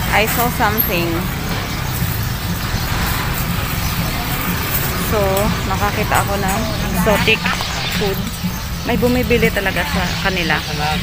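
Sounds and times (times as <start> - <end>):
street traffic rumble with hiss: 0.0 - 11.0.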